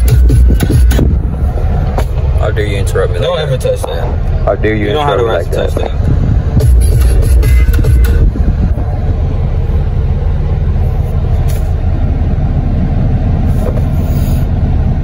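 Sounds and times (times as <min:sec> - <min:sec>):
music from car stereo: 0:00.0 - 0:02.4, 0:05.8 - 0:08.9
car cabin rumble: 0:00.0 - 0:15.0.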